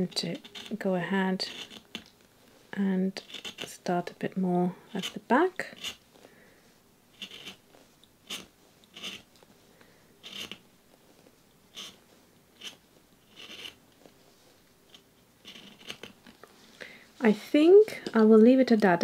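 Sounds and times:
knife whittling pencil wood: 0:00.0 - 0:00.8, 0:01.4 - 0:02.1, 0:03.2 - 0:03.8, 0:05.0 - 0:06.0, 0:07.1 - 0:07.6, 0:08.2 - 0:09.3, 0:10.2 - 0:10.6, 0:11.7 - 0:12.0, 0:12.6 - 0:14.2, 0:14.9 - 0:16.2.

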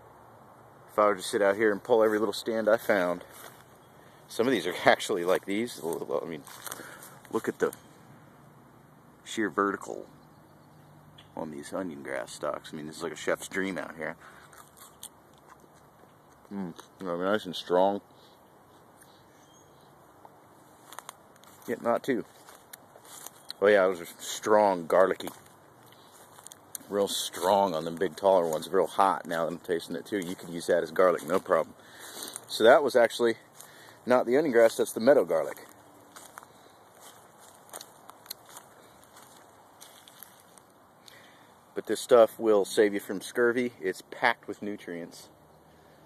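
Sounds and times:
faint outdoor hiss: 0:00.0 - 0:46.0
faint crackles and clicks: 0:13.5 - 0:17.1, 0:20.2 - 0:30.6, 0:35.4 - 0:41.3.

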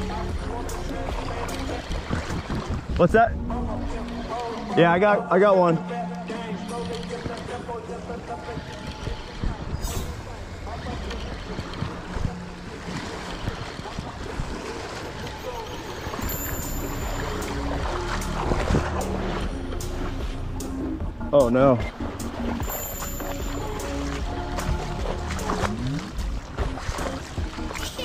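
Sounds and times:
wind on microphone: 0:01.1 - 0:04.0, 0:07.1 - 0:20.4.

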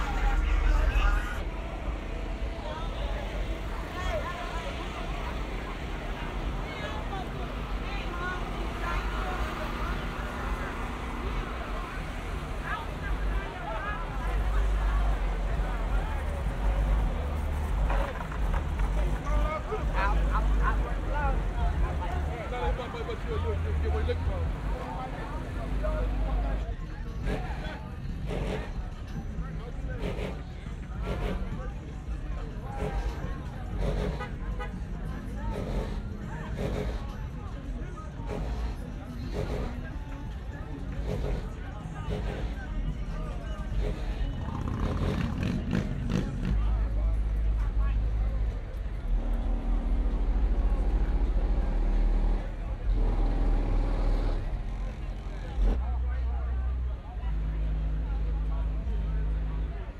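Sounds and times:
car engine rumbling: 0:00.0 - 0:59.9
indistinct voices talking: 0:00.0 - 0:59.9.

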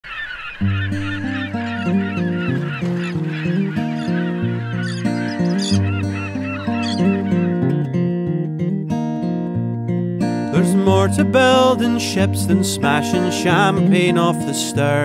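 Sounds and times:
gulls calling and squawking: 0:00.0 - 0:08.1
acoustic guitar music: 0:00.6 - 0:15.0.

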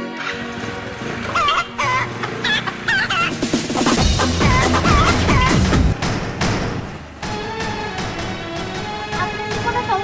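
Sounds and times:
background music: 0:00.0 - 0:10.0
hen clucking: 0:01.3 - 0:05.8.

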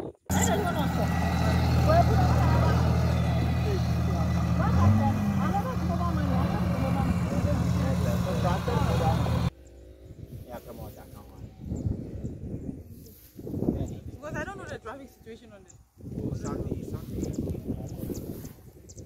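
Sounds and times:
people talking: 0:00.3 - 0:09.5, 0:10.4 - 0:11.4, 0:13.6 - 0:18.2
tractor engine running: 0:00.3 - 0:10.0.

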